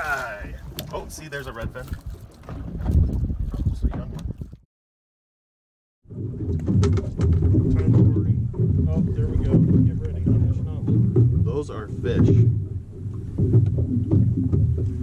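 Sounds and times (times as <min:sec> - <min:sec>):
boat and wind rumble: 0:00.0 - 0:04.6, 0:06.1 - 0:15.0.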